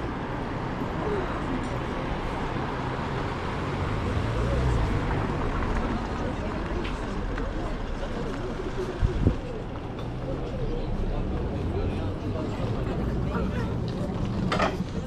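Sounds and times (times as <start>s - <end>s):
cars driving past: 0.0s - 15.0s
murmur of people talking: 0.0s - 15.0s.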